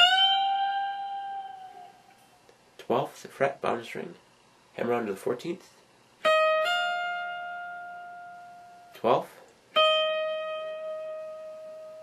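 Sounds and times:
electric guitar note ringing: 0.0s - 2.2s, 6.2s - 9.0s, 9.8s - 12.0s.

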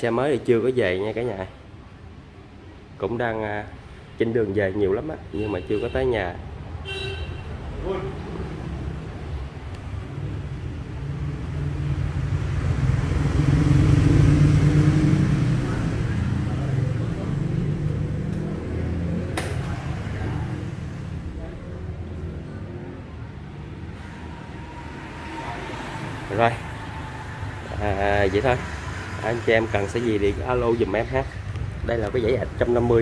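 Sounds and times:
vehicle engine passing by: 7.6s - 33.0s
sharp click: 19.3s - 19.8s.

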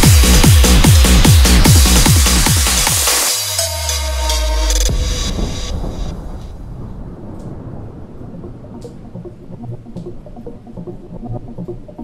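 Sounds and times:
low rumbling thunder-like noise: 4.8s - 10.8s.

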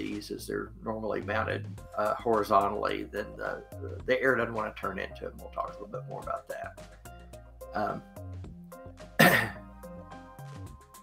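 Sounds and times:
quiet background music: 0.0s - 11.0s
man clearing throat: 9.2s - 9.6s.

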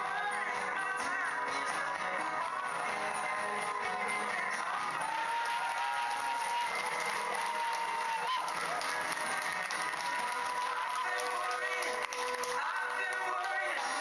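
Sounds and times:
background music: 0.0s - 14.0s
children cheering and clapping: 2.6s - 14.0s.

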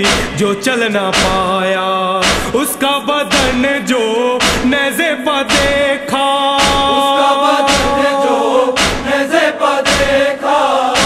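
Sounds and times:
deep percussive beat: 0.0s - 6.0s, 6.6s - 11.0s
men chanting a lament: 0.0s - 11.0s.

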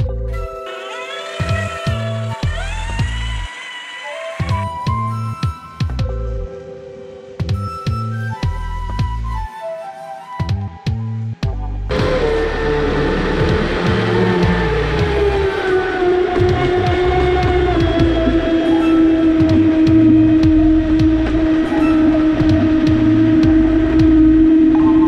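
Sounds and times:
background music: 0.0s - 25.0s
speedboat motor running fast: 11.9s - 25.0s.

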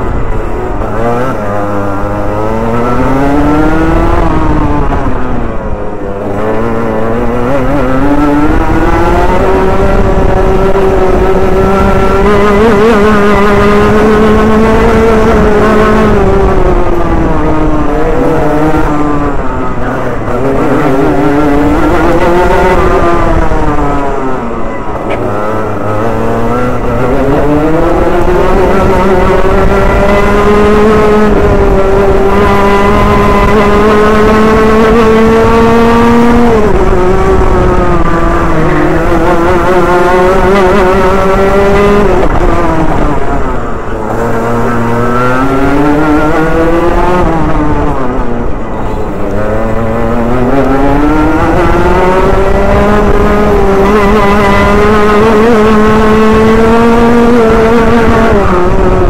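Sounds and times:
kart engine revving: 0.0s - 59.0s.

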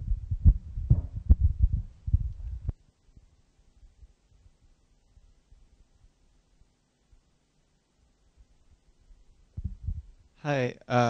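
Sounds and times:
microphone handling thumps and rubs: 0.0s - 2.8s, 9.5s - 10.2s.

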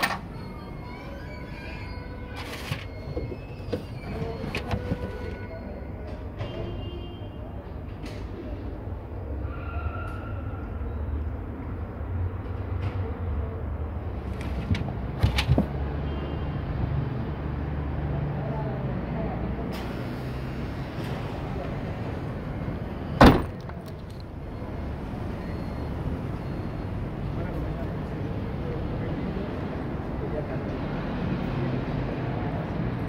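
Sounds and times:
street traffic rumble: 0.0s - 33.0s
car tailgate thump: 23.2s - 23.8s.

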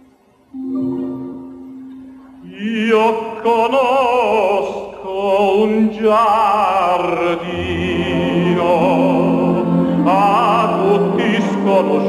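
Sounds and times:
symphony orchestra playing: 0.5s - 2.4s, 7.1s - 12.0s.

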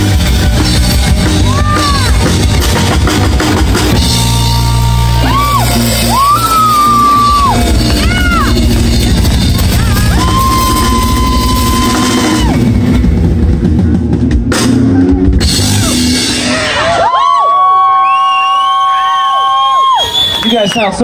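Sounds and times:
live rock band playing: 0.0s - 17.2s.

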